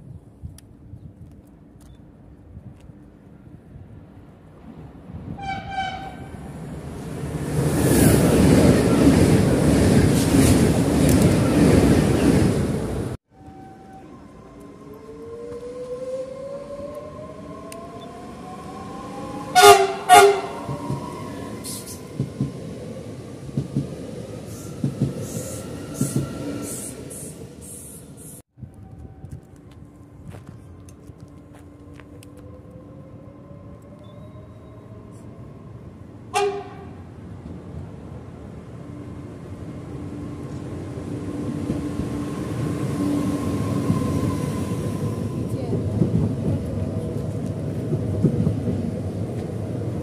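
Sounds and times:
train rushing past: 4.0 - 50.0
electric train whine: 4.1 - 50.0
train horn: 5.4 - 6.4, 19.5 - 20.8, 36.3 - 37.0.

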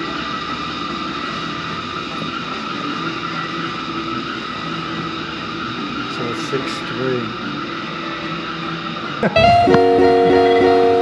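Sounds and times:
steady mechanical drone: 0.0 - 11.0.

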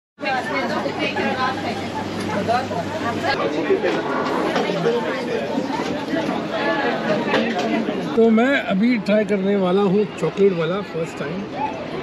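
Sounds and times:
people chattering: 0.2 - 12.0.

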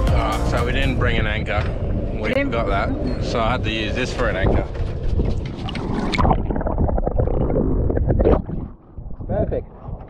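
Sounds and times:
wind rumble on microphone: 0.6 - 10.0.

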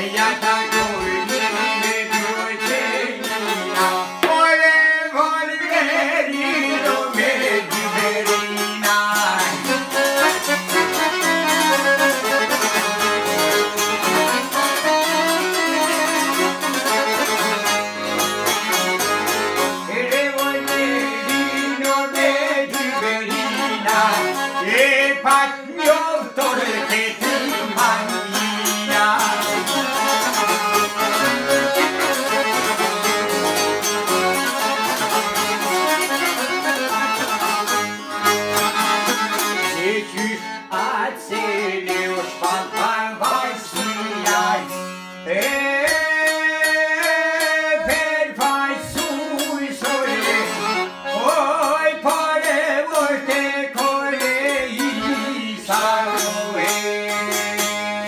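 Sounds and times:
accordion chords: 0.0 - 58.0
plucked lute notes: 6.8 - 58.0.

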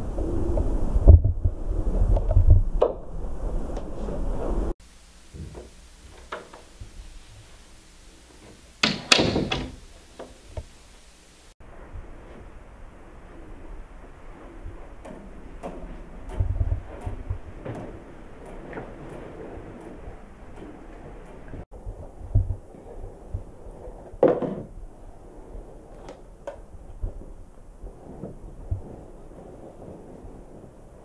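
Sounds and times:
faint steady hiss: 0.0 - 31.0.

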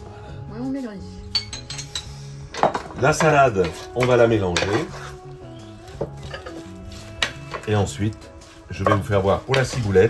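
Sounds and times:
background music: 0.0 - 10.0
glass clinks: 1.3 - 3.0
glass cruet set down on counter: 1.4 - 3.0.

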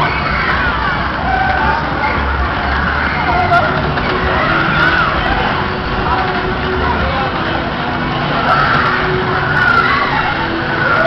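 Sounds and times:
fairground ride rushing and rumbling: 0.0 - 11.0.

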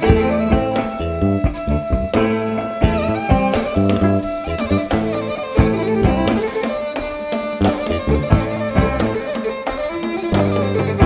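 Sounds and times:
fiddle: 0.0 - 11.0
hand drum strokes: 0.0 - 11.0.

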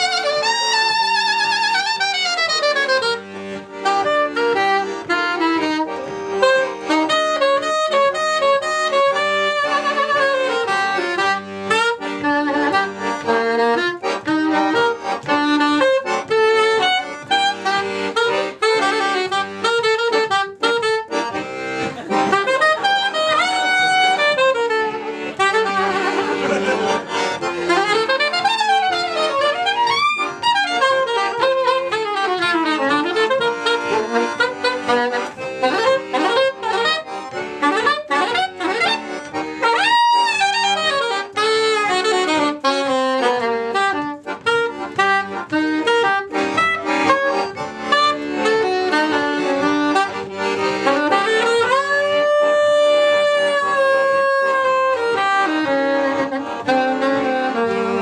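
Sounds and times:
accordion: 0.0 - 58.0
soprano saxophone: 0.0 - 58.0.

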